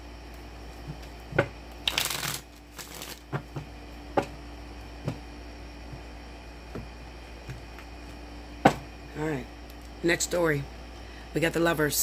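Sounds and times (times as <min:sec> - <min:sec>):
cards being shuffled: 0:01.8 - 0:03.3.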